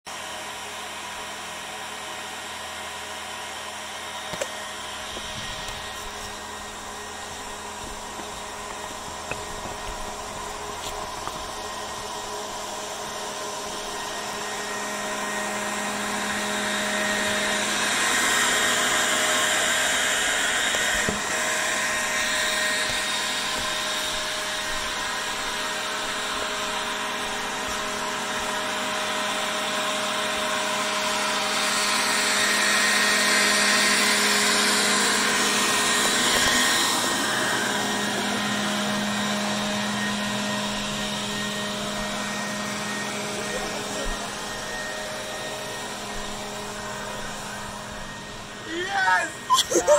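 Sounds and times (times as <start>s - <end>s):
motor whir with hissing rush: 0.2s - 49.9s
constant hum: 4.3s - 15.2s.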